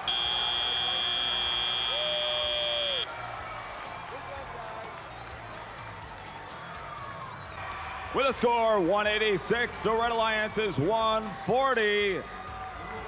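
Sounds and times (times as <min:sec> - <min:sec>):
high-pitched electronic buzzer: 0:00.0 - 0:03.1
arena crowd noise: 0:00.0 - 0:13.0.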